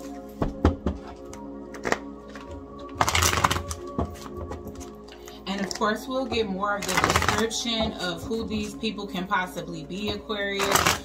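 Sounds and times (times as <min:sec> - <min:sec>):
soft background music: 0:00.0 - 0:11.0
cards being shuffled: 0:01.3 - 0:05.8, 0:06.8 - 0:07.5
cards tapping: 0:06.8 - 0:08.0.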